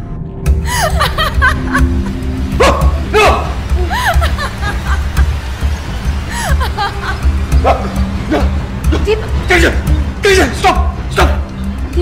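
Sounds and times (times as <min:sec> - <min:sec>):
background film music: 0:00.0 - 0:12.0
woman laughing: 0:00.6 - 0:02.3, 0:03.7 - 0:05.4, 0:06.3 - 0:07.4.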